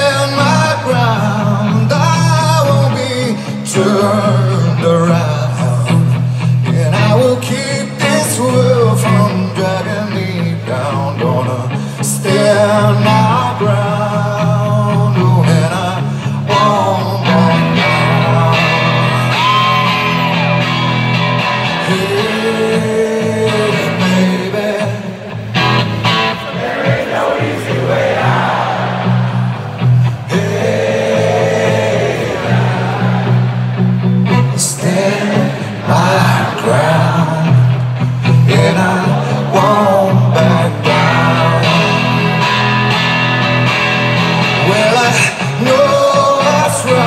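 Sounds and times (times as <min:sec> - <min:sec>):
person singing: 0:00.0 - 0:20.4, 0:21.6 - 0:25.4, 0:34.2 - 0:43.0, 0:44.6 - 0:47.0
strummed guitar: 0:00.0 - 0:47.0
crowd voices: 0:11.9 - 0:47.0.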